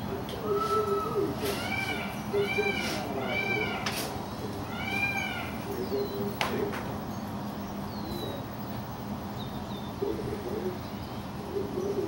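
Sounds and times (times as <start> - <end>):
peafowl calling: 0.3 - 6.2.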